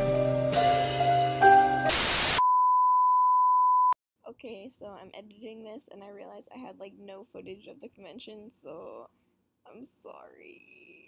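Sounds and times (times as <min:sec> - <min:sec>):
steady test tone beep: 0:02.4 - 0:04.0.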